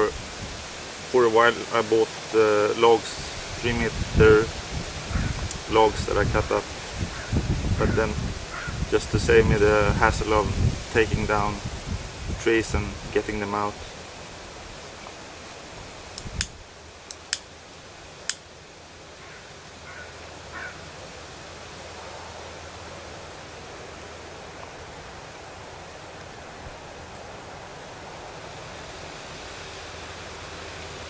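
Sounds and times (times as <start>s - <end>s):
faint hiss of air: 0.0s - 31.0s.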